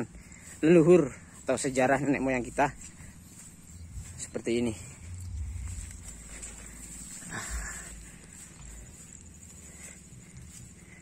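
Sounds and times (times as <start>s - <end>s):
footsteps rustling through plants: 0.0s - 11.0s
steady high whine: 0.0s - 11.0s
wind rumble on microphone: 3.7s - 8.8s.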